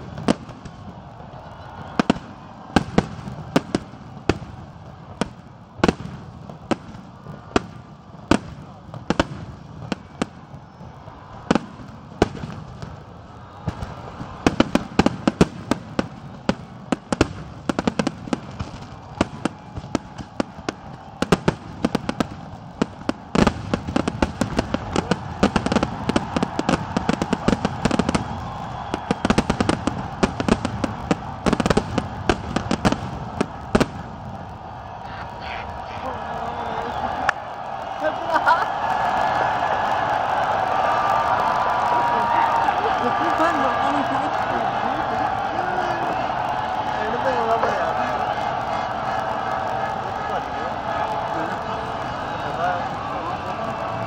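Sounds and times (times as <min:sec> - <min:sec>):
fireworks bursting and crackling: 0:00.0 - 0:54.0.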